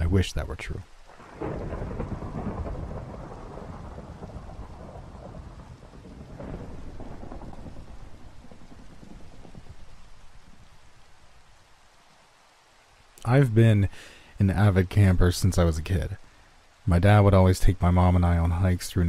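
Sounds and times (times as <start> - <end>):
rain falling: 0.0 - 19.0
rolling thunder: 1.1 - 11.4.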